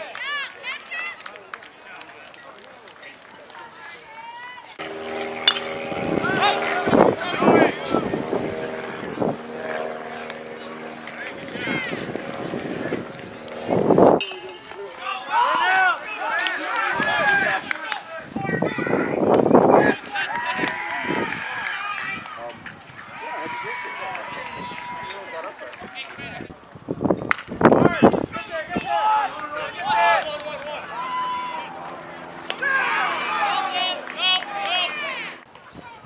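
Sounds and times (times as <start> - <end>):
people shouting: 4.1 - 13.5, 14.2 - 19.2, 19.8 - 22.3, 23.0 - 25.5, 28.4 - 35.4
bat cracking a ball: 4.8 - 7.1, 27.3 - 27.6
steady engine-like hum: 4.8 - 14.2.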